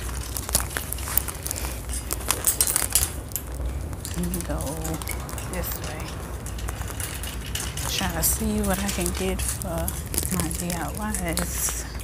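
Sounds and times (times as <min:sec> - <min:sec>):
steady low hum: 0:00.0 - 0:12.0
wire shopping cart rattling: 0:00.0 - 0:12.0.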